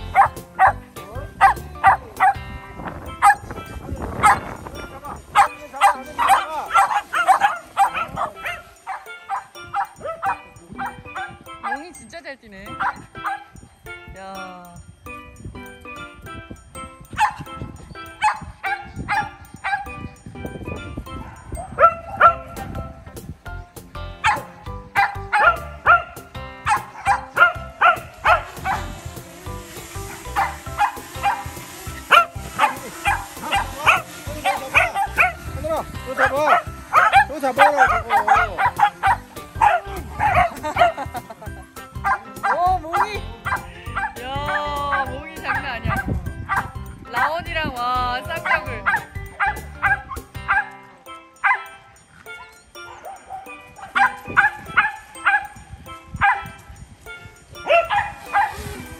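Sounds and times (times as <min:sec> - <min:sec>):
dogs whining: 0:00.0 - 0:12.0, 0:17.1 - 0:20.2, 0:21.0 - 0:22.8, 0:24.2 - 0:29.2, 0:30.0 - 0:35.5, 0:36.1 - 0:46.9, 0:51.4 - 0:55.6, 0:57.5 - 0:58.9
dogs barking and yipping: 0:00.0 - 0:14.0, 0:15.6 - 0:47.5, 0:48.1 - 0:58.9.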